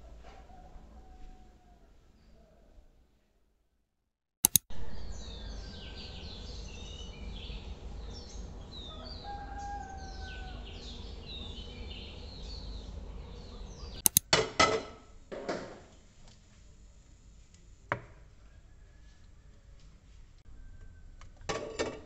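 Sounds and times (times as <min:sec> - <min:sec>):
sharp click: 0:04.4 - 0:04.7, 0:14.0 - 0:14.3
low steady rumble: 0:04.7 - 0:14.0
birds chirping: 0:04.7 - 0:14.2.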